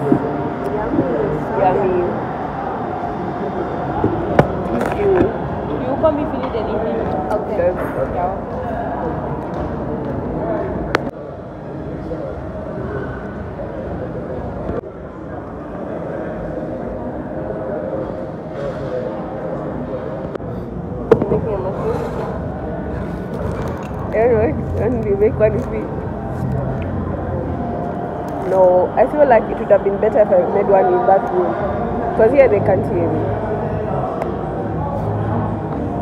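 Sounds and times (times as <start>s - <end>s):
people talking indistinctly: 0.0s - 36.0s.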